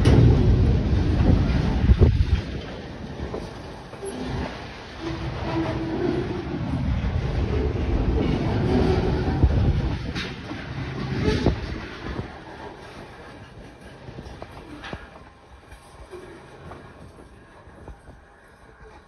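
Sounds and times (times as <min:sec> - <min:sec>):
freight train wheels rumbling: 0:00.0 - 0:19.0.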